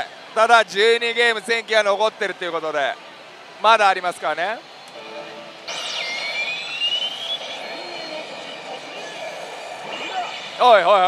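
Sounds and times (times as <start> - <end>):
slot machine rising whoosh: 5.0 - 11.0.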